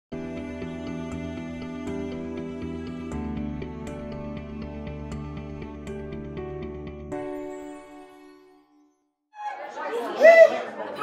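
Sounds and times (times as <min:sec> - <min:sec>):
people talking in a large room: 0:09.4 - 0:11.0.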